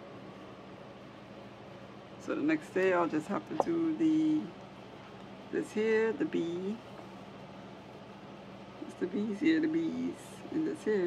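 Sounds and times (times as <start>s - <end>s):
faint constant hum: 0.0s - 11.0s.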